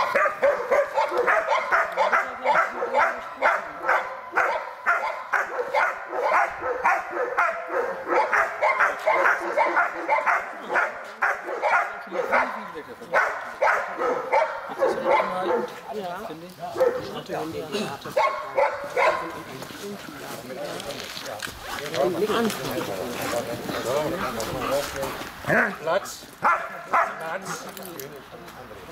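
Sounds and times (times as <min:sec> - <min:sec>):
dog barking rapidly: 0:00.0 - 0:15.8, 0:16.8 - 0:17.1, 0:18.2 - 0:19.4, 0:25.5 - 0:27.6.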